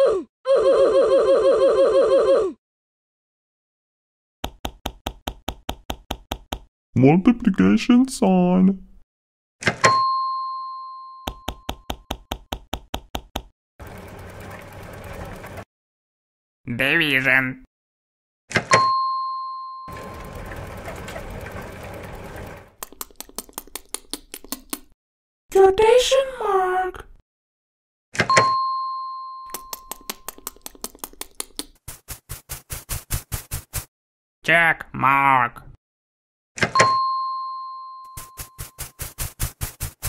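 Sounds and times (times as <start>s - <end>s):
cartoon chime ding: 28.3s - 29.8s
fast run of clicks: 29.6s - 33.9s, 38.2s - 40.0s.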